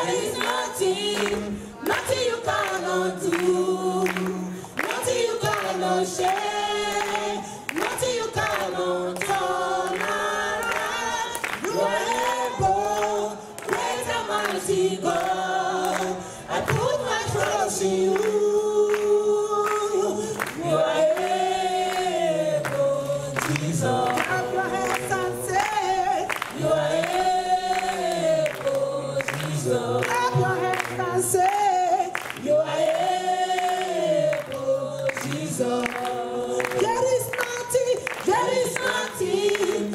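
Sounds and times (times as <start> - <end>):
gospel group singing: 0.0 - 39.9.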